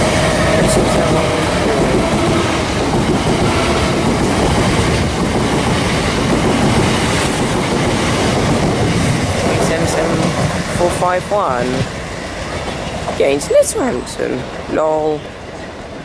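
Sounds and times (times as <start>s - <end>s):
electric train passing: 0.0s - 16.0s.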